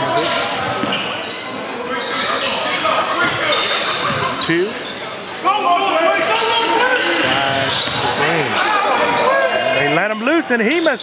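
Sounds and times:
crowd shouting: 5.4 - 10.0.

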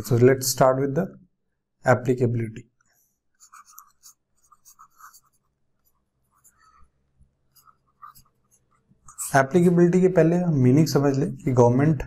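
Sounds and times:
stylus scratching on tablet: 2.9 - 10.4.

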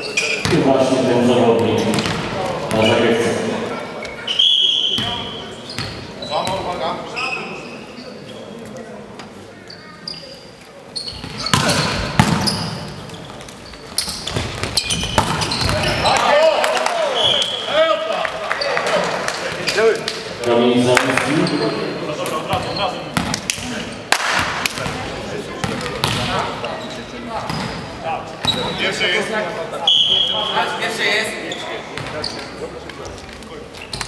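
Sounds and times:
whistle blast: 4.3 - 5.1, 17.2 - 17.8, 29.8 - 30.7.

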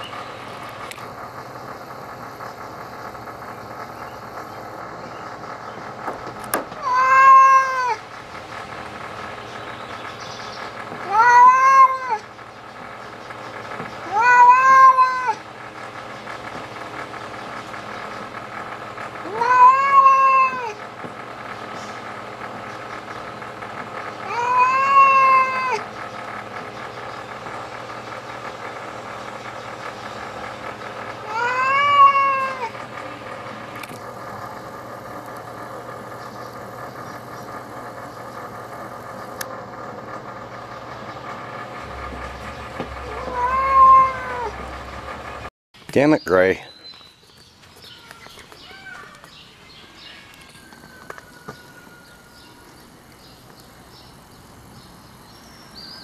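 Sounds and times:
cat yowling: 6.8 - 8.0, 11.0 - 12.3, 14.0 - 15.5, 19.2 - 20.8, 24.2 - 25.9, 31.2 - 32.8, 43.0 - 44.6, 48.0 - 49.2.

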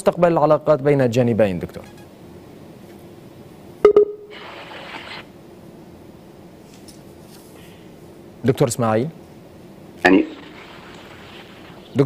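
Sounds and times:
line hiss: 10.1 - 12.0.

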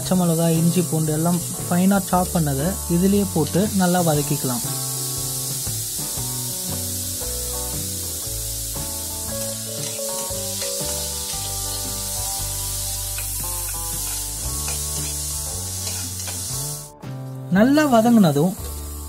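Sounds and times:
background music: 0.0 - 19.0
onions sizzling in hot oil: 0.0 - 19.0
ladle scraping pan: 15.8 - 16.4.

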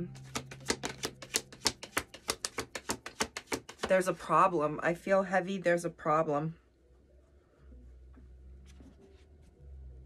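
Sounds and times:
cards being shuffled: 0.0 - 4.2.

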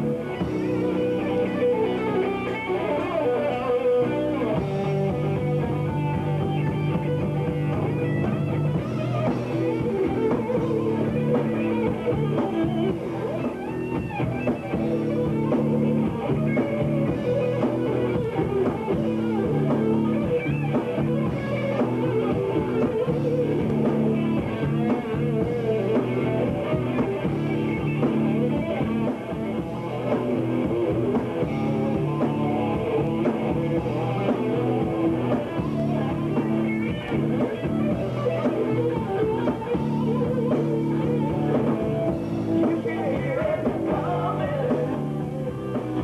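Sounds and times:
bass guitar: 0.0 - 46.0
drum kit: 0.0 - 46.0
electric guitar: 0.0 - 46.0.

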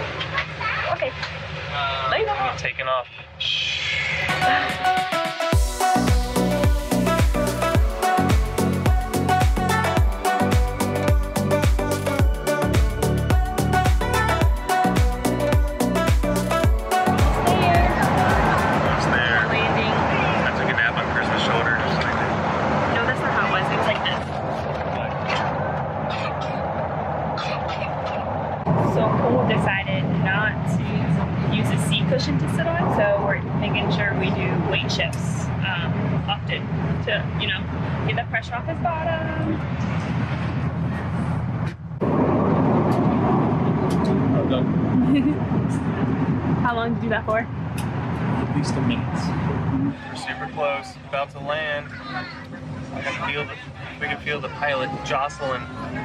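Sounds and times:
airliner cabin drone: 0.0 - 56.0.

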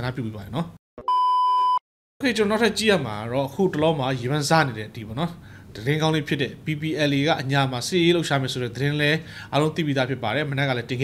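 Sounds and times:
high electronic beep: 1.0 - 1.8.

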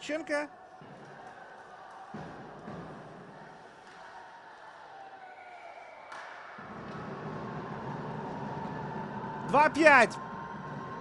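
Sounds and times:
ice hockey arena crowd: 0.0 - 11.0.

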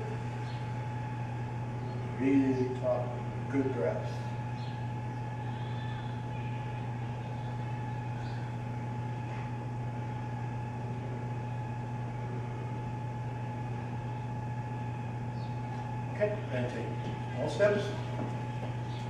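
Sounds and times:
low mechanical hum: 0.0 - 19.0.

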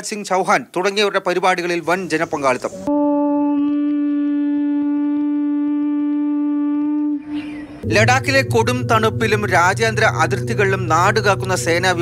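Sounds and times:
conch shell blown: 2.9 - 12.0.

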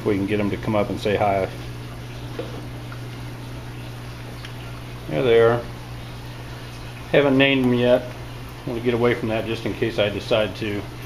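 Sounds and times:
low steady hum: 0.0 - 11.0
water bubbling and splashing: 1.2 - 11.0.

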